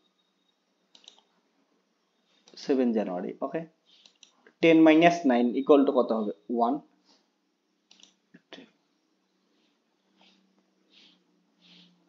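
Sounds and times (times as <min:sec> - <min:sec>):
computer mouse clicking: 0:00.9 - 0:01.3, 0:03.9 - 0:04.6, 0:07.9 - 0:08.2.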